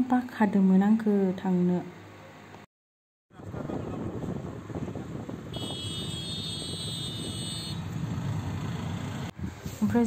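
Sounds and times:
car engine and road rumble: 3.3s - 10.0s.

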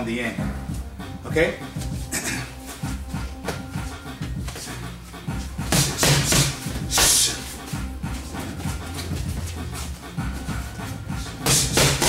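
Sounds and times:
boxing gloves smacking pads: 5.6s - 7.4s, 11.3s - 12.0s.

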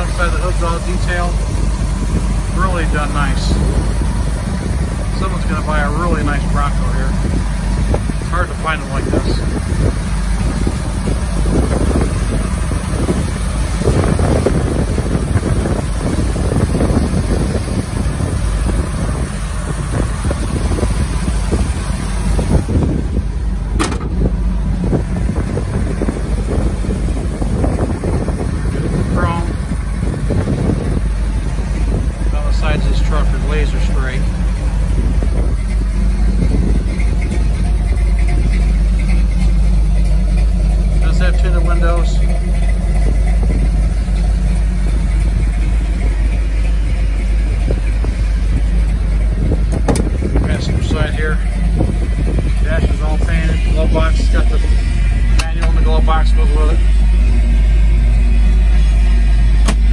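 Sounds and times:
engine idling with low rumble: 0.0s - 59.9s.

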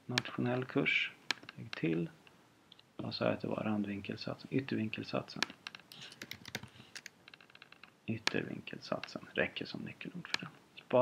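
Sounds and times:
computer keyboard typing: 5.9s - 7.1s.

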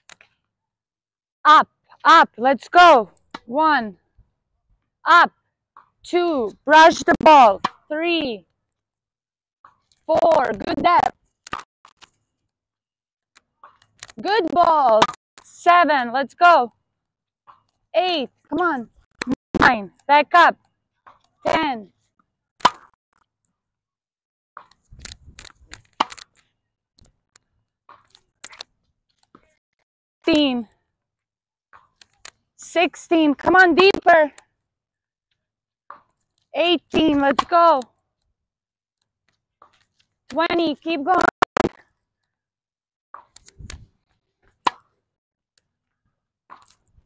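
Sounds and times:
racket hitting tennis ball: 44.7s - 44.9s
tennis ball bouncing: 44.7s - 44.9s.

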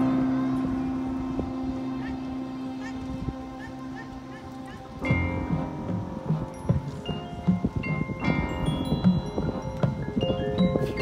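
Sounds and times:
marching band chord: 0.0s - 10.0s.

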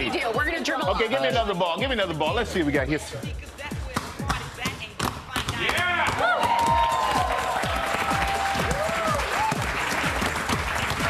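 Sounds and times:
basketballs bouncing on hardwood floor: 3.8s - 7.0s.

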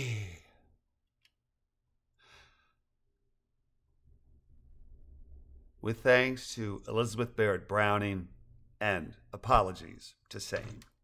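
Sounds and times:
breathy exhale: 2.2s - 2.8s.

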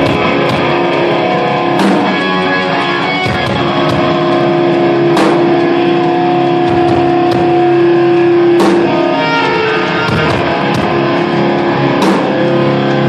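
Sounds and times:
cymbal crashes: 0.0s - 13.0s
distorted electric guitar chord: 0.0s - 13.0s
drums: 0.0s - 13.0s
live rock band playing: 0.0s - 13.0s.

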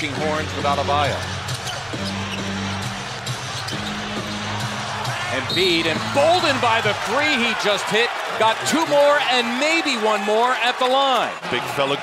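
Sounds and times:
arena music low notes: 0.0s - 7.7s
crowd noise: 0.0s - 12.0s.

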